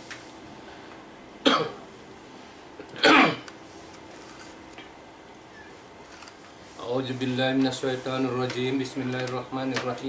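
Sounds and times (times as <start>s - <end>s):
person coughing: 1.4s - 1.8s, 3.0s - 3.5s.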